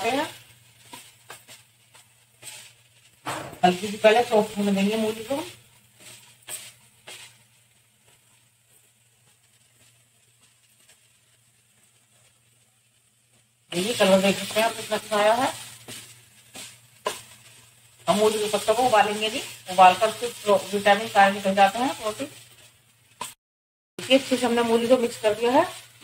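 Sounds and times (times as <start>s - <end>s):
spatula scraping pan: 0.0s - 12.4s, 13.3s - 23.4s
wooden spatula stirring in a pan: 0.0s - 23.4s, 24.0s - 26.0s.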